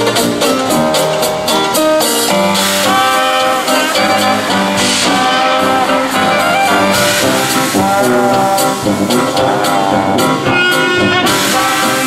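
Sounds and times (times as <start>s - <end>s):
jazz band playing: 0.0s - 12.0s
cymbal strokes: 2.0s - 9.9s.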